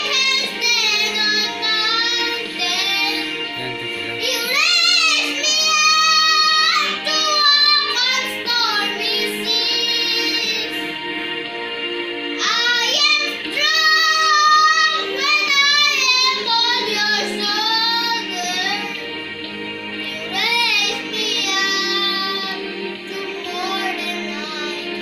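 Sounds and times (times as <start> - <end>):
boy singing: 0.0 - 10.9, 12.4 - 18.9, 20.1 - 25.0
musical accompaniment: 0.0 - 25.0.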